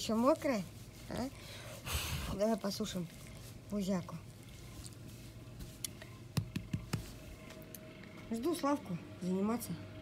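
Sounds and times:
hand rubbing dog fur: 0:00.0 - 0:07.4.

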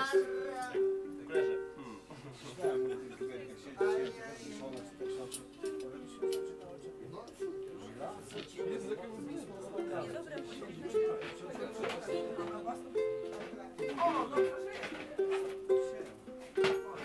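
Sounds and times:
ukulele fingerpicking: 0:00.0 - 0:17.0.

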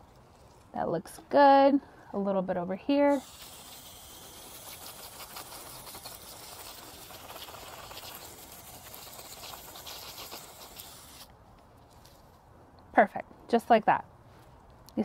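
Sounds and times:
hose water spraying: 0:03.1 - 0:11.3.

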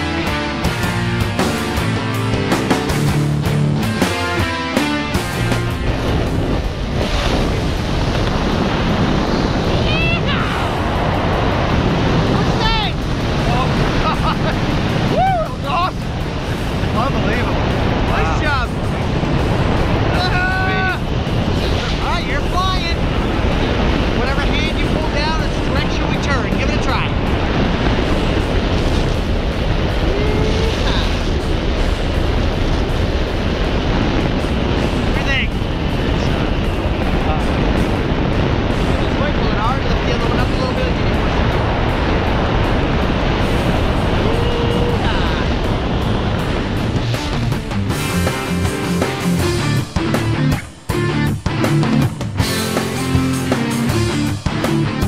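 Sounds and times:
wind buffeting microphone: 0:05.3 - 0:54.6
voices in wind: 0:05.8 - 0:47.1.

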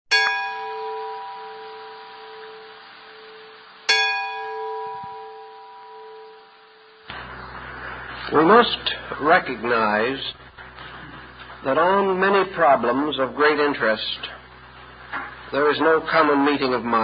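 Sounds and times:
bell ringing: 0:00.1 - 0:07.1
steady hiss with low hum: 0:00.1 - 0:17.0.

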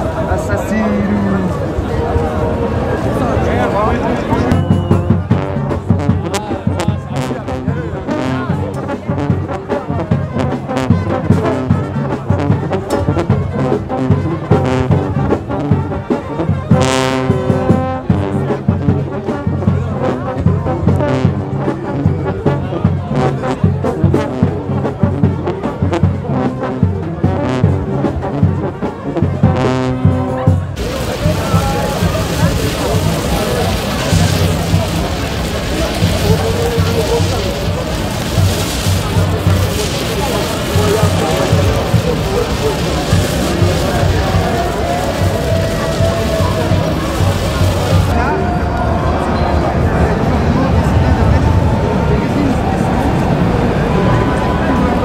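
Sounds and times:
crowd noise: 0:00.0 - 0:55.0
brass music: 0:01.5 - 0:48.2
hand flare hissing: 0:30.8 - 0:48.1.

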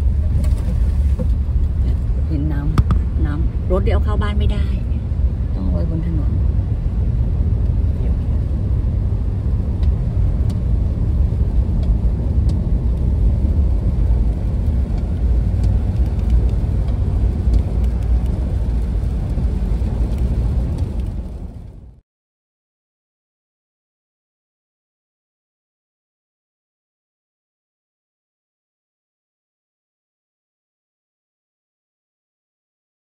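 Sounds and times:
car driving on wet road: 0:00.0 - 0:22.0.

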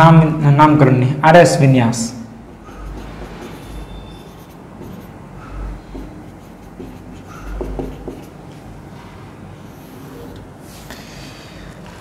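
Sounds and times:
marker scratching on whiteboard: 0:02.4 - 0:08.8, 0:09.6 - 0:10.4.

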